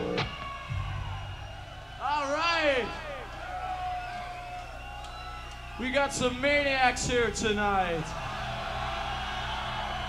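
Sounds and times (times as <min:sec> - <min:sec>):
sound system hum and hiss: 0:00.0 - 0:10.0.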